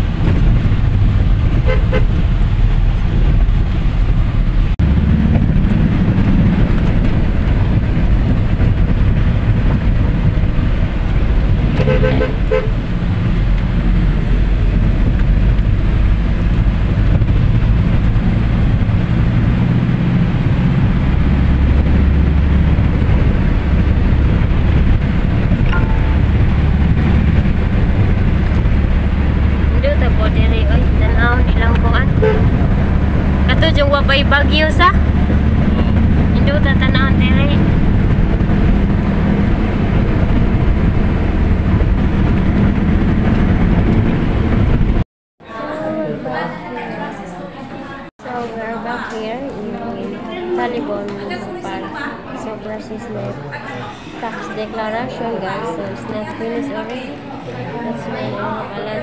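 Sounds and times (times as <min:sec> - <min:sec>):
vehicle engine and road noise: 0:00.0 - 0:45.0.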